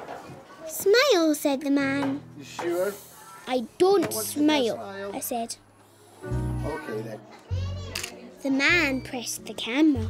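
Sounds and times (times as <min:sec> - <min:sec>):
deep bass notes: 0:06.3 - 0:06.8.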